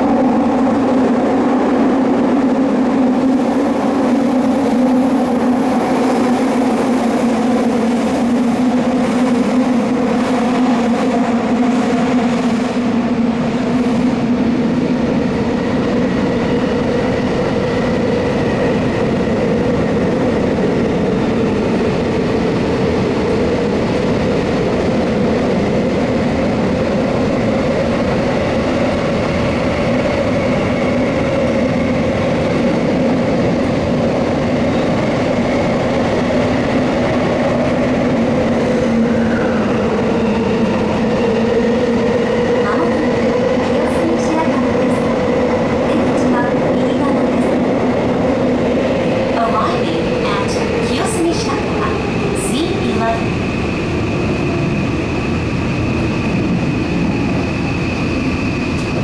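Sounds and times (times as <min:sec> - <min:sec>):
wheels rumbling on rail: 0:00.0 - 0:59.0.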